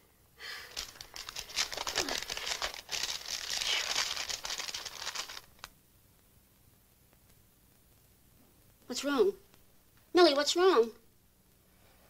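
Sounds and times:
envelope paper tearing: 0.7 - 5.7.

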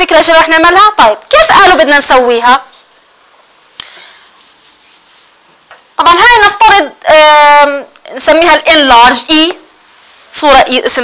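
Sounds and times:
eraser rubbing across whiteboard: 4.2 - 5.6.

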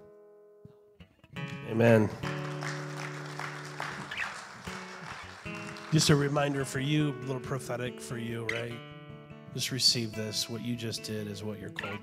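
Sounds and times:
soft acoustic guitar chords: 0.0 - 12.0.

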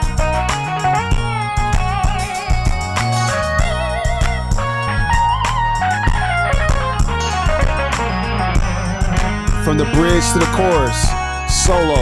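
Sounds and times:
steady bass notes: 0.0 - 12.0
synthesizer lead melody: 0.0 - 12.0
drum beat: 8.6 - 12.0.

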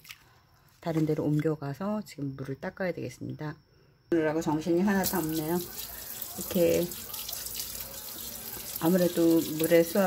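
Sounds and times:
water spraying from shower head: 5.0 - 10.0.

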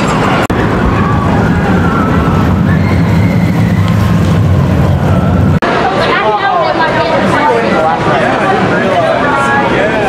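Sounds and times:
roller coaster train rumbling: 0.0 - 10.0.

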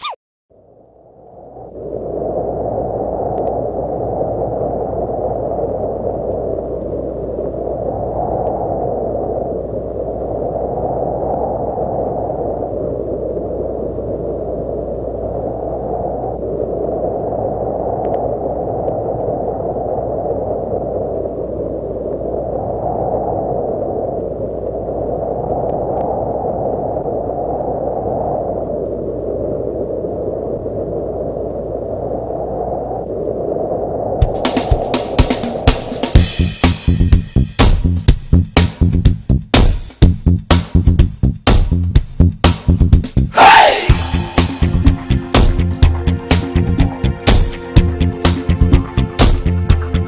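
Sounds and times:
muffled rushing noise: 32.2 - 50.0.

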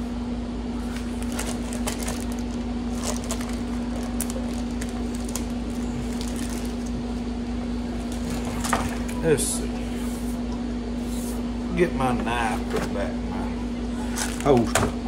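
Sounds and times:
steady low appliance hum: 0.0 - 15.0
plastic zip-top bag rustling: 0.9 - 7.0.

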